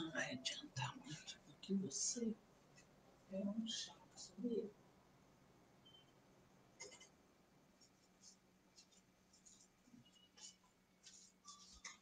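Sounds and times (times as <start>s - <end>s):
low steady hum: 0.0s - 12.0s
faint scratchy rustles: 7.7s - 12.0s.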